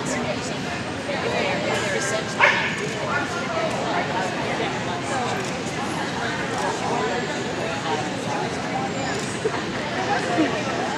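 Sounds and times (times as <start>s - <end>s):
people talking: 0.0s - 10.9s
dog barking: 2.4s - 2.8s.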